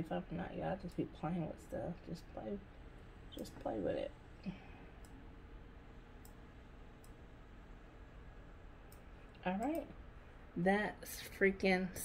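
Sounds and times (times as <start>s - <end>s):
computer mouse clicking: 6.2s - 6.4s, 7.0s - 7.2s.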